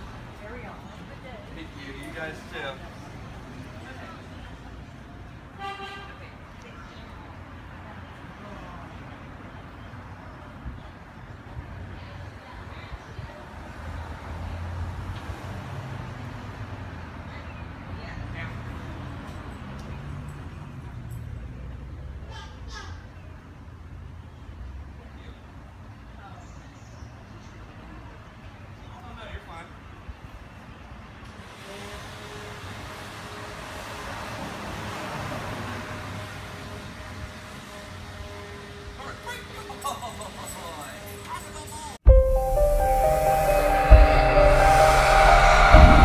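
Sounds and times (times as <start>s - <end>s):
street traffic: 0.0s - 42.1s.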